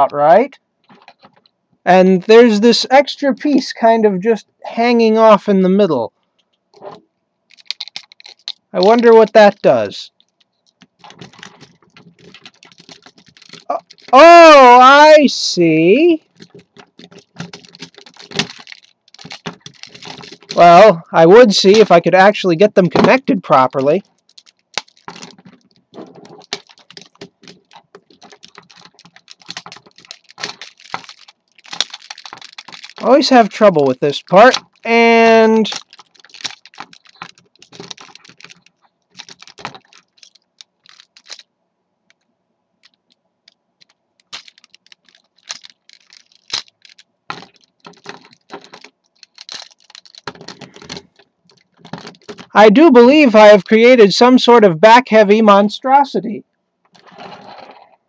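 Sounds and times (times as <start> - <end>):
plastic toy parts clicking: 7.5 - 15.2, 16.2 - 20.9, 21.5 - 22.0, 22.9 - 41.5, 42.8 - 52.6.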